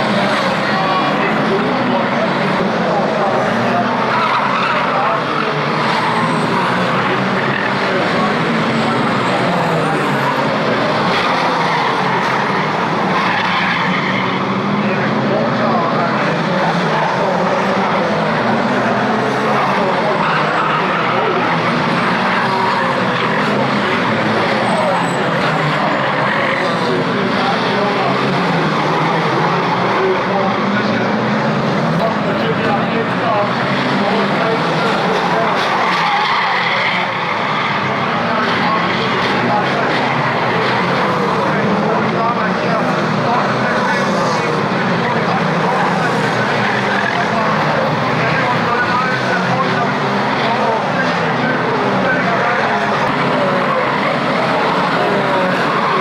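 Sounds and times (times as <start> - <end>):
racing car engines revving: 0.0 - 56.0
tyres skidding: 0.0 - 56.0.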